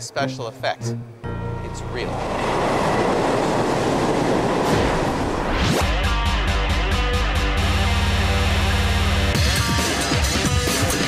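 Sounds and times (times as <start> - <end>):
electric train passing: 0.8 - 5.8.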